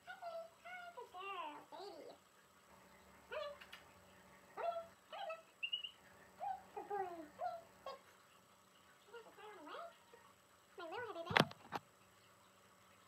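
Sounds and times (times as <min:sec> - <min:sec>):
puppies whining and yipping: 0:04.6 - 0:08.1.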